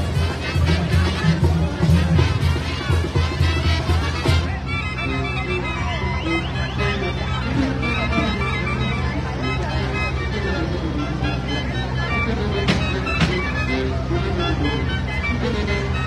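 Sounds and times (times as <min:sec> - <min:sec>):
crowd chatter: 0:00.0 - 0:16.0
live band music: 0:00.0 - 0:16.0.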